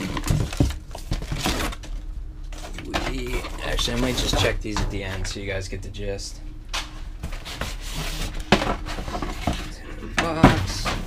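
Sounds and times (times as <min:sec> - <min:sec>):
cardboard boxes rustling: 0:00.0 - 0:05.2, 0:07.2 - 0:11.0.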